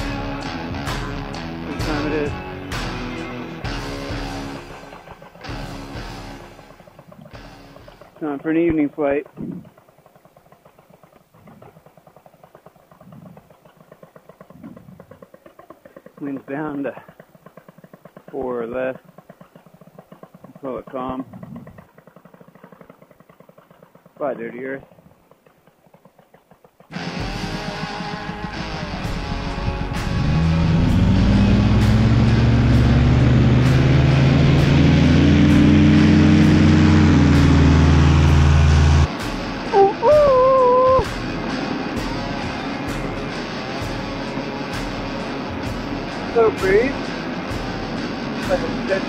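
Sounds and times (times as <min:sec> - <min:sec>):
music with steady beat: 0:00.0 - 0:08.2, 0:26.9 - 0:35.7, 0:36.4 - 0:49.0
engine revving up: 0:26.9 - 0:49.0
plucked guitar notes: 0:27.0 - 0:49.0.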